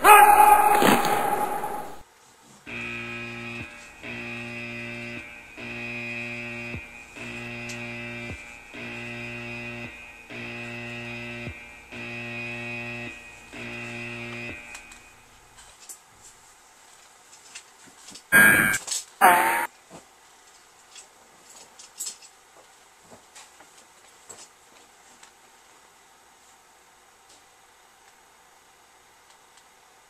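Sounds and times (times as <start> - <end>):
buzzing tone: 2.7 - 15.6, 18.3 - 19.7.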